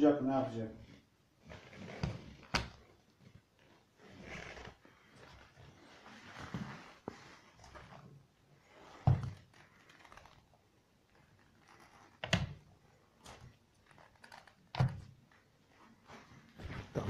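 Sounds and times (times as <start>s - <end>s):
soft shuffling: 3.1s - 12.2s, 15.2s - 17.0s.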